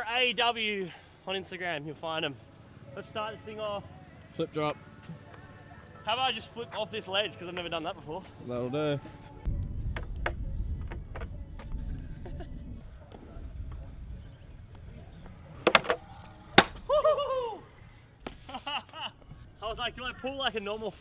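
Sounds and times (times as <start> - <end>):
scooter clacking on ramp: 15.6 - 16.0.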